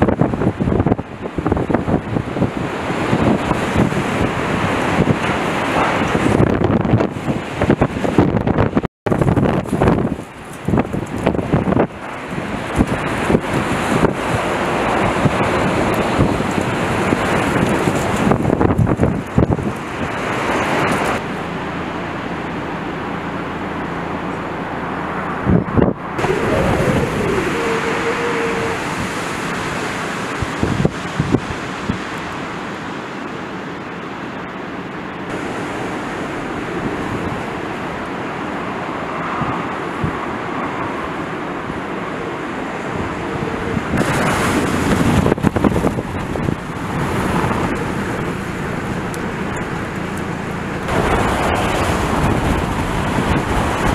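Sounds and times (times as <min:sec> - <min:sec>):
waves slapping against pier: 0:00.0 - 0:53.9
wind buffeting microphone: 0:00.0 - 0:53.9.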